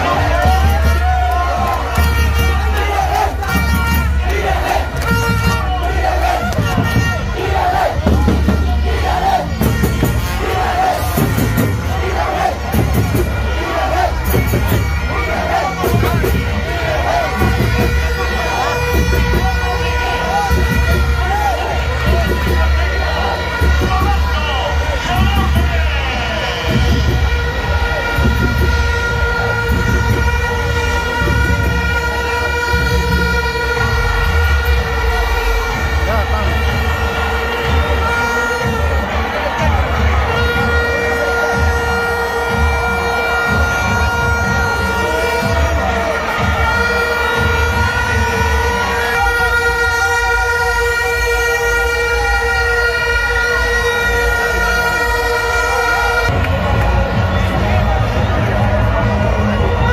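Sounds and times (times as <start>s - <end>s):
low repeated beats: 0.0s - 59.9s
plastic horns blowing: 0.0s - 59.9s
stadium crowd noise: 0.0s - 59.9s.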